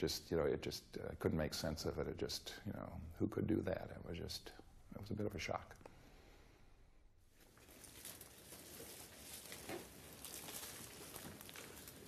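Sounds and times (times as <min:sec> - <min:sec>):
soft rustles: 0:07.2 - 0:12.0.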